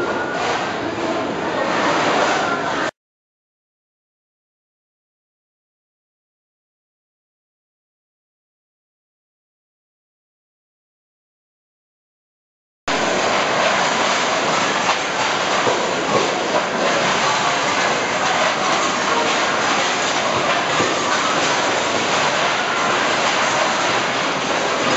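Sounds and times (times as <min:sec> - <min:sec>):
voices: 0:00.0 - 0:02.9
water washing: 0:12.9 - 0:24.9.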